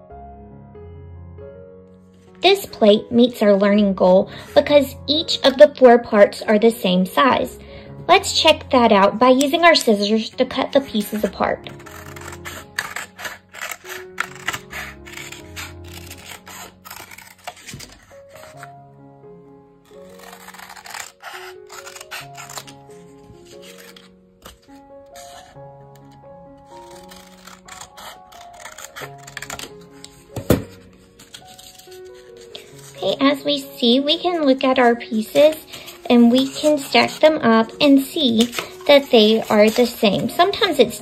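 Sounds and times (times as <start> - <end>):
soft background music: 0.0 - 41.0
scissors cutting paper plate: 8.4 - 18.8, 19.9 - 41.0.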